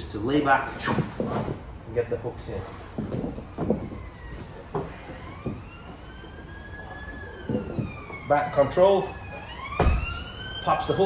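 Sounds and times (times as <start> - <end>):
body thumping and rustling on mats: 0.8 - 1.8, 2.6 - 8.3, 9.2 - 10.4
faint siren: 2.5 - 11.0.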